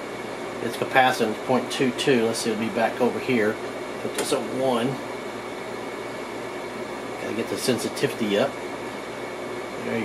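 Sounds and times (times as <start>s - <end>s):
background hum and hiss: 0.0s - 10.0s.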